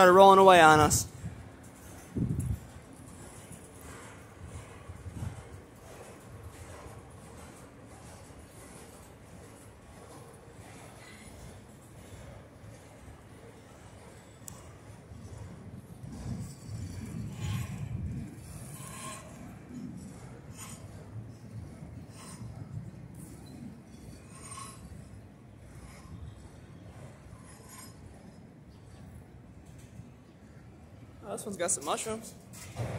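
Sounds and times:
train running gear scraping: 0.0s - 32.9s
train wheels rumbling on rails: 0.0s - 32.9s.

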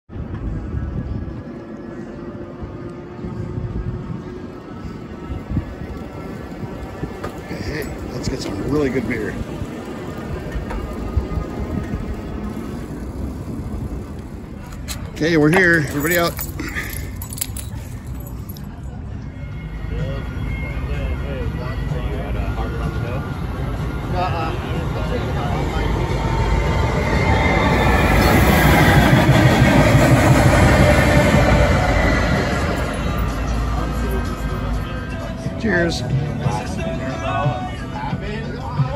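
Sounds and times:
bicycle road noise rumble: 0.1s - 38.9s
passenger train passing: 0.2s - 16.3s, 18.9s - 38.9s
wind noise: 2.6s - 16.0s.

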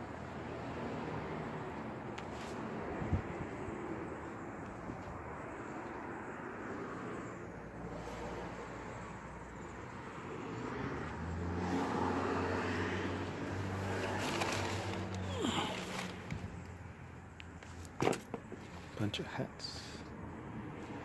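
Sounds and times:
vehicle engine humming: 0.0s - 19.1s.

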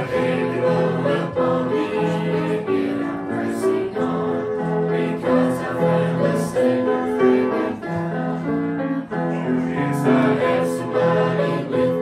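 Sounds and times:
group singing gospel in harmony: 0.0s - 12.0s.

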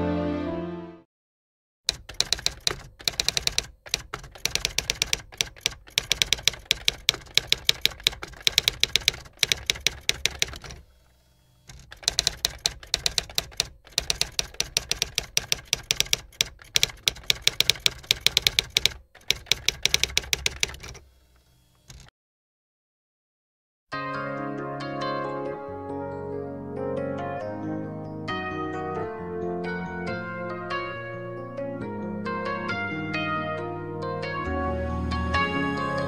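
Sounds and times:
typewriter key strikes: 1.9s - 10.8s, 11.7s - 21.0s.

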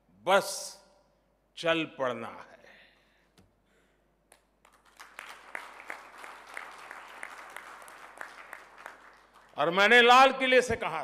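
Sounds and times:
audience clapping: 4.3s - 10.2s.

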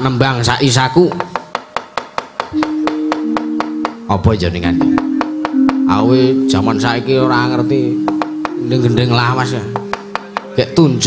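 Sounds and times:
rapid wooden knocks: 1.1s - 4.0s, 8.1s - 8.6s, 9.7s - 10.6s
gamelan held notes: 2.6s - 11.0s.

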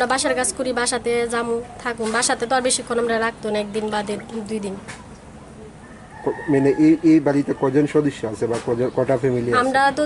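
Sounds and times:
woman speaking: 0.0s - 4.9s, 9.5s - 10.0s.

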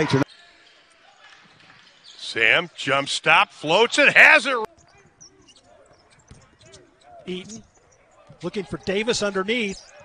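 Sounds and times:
faint voices of players: 0.0s - 10.0s.

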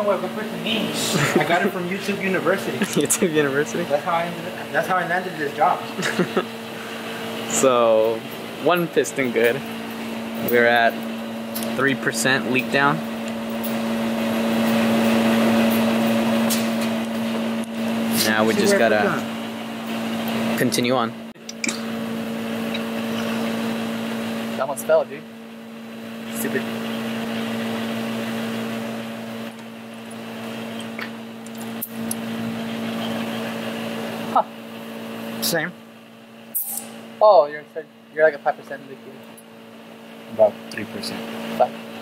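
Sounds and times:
constant low hum: 0.0s - 42.0s.

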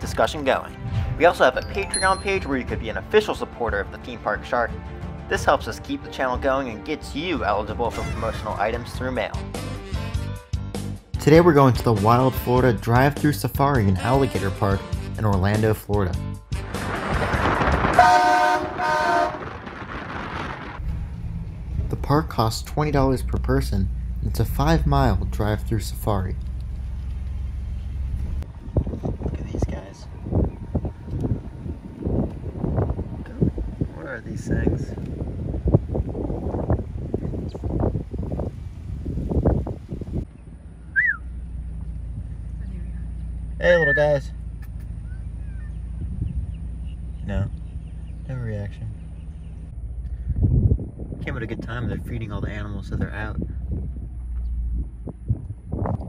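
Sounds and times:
car horn beeps: 7.9s - 8.6s, 18.0s - 19.4s
rushing noise: 16.5s - 21.9s
wind buffeting microphone: 16.7s - 24.1s, 28.2s - 42.4s, 45.0s - 56.0s
car idling hum: 20.8s - 33.9s, 35.0s - 56.0s
whistle-like chirp: 40.8s - 41.4s, 43.7s - 44.4s.

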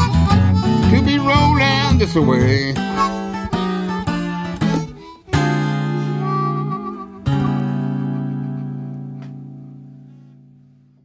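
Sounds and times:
acoustic blues guitar: 0.0s - 11.0s.

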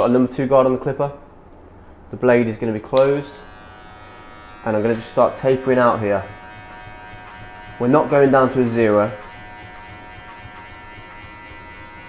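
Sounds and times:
electric hair clipper buzzing: 3.0s - 12.0s.

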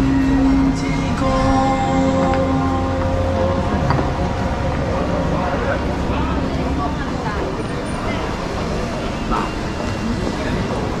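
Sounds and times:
steady low rumble: 0.0s - 9.0s
voices of passers-by: 0.0s - 11.0s.

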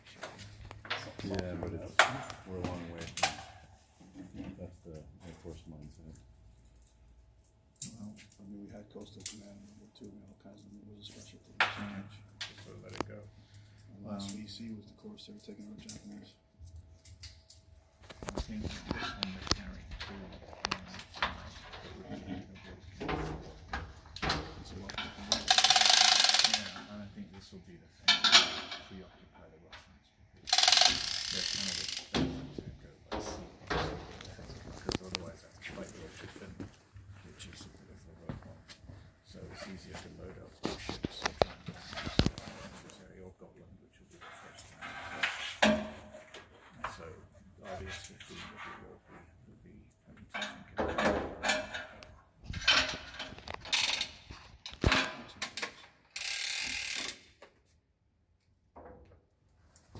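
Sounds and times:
gear and pulley noises: 25.2s - 26.7s, 30.5s - 32.1s, 56.1s - 57.2s
winch mechanism running: 25.4s - 26.7s
winch ratchet clicks: 25.5s - 26.7s, 30.5s - 32.1s, 53.7s - 54.1s, 56.2s - 57.3s.

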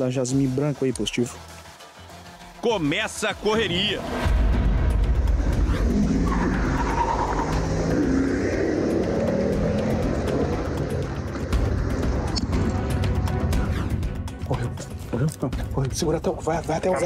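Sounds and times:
background music: 0.0s - 17.0s
car engine revving: 3.9s - 14.0s.

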